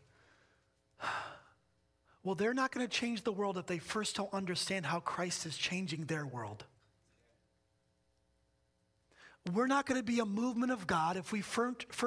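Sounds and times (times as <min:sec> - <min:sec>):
man breathing: 0:00.0 - 0:02.2.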